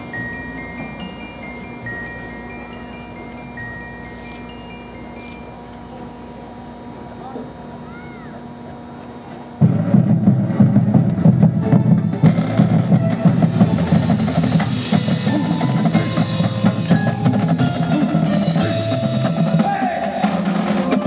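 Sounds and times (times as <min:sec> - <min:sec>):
mallet percussion chime-like notes: 0:00.0 - 0:07.9, 0:14.8 - 0:19.6
marching band with drums: 0:09.6 - 0:21.0.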